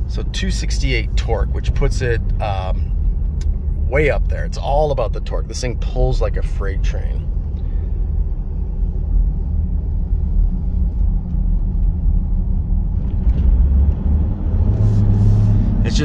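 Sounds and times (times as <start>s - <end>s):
diesel engine rumble: 0.0s - 16.0s
road noise: 0.0s - 16.0s.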